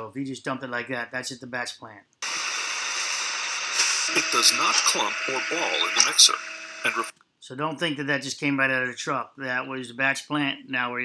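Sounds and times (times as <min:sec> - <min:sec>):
steady hiss: 0:02.2 - 0:07.1.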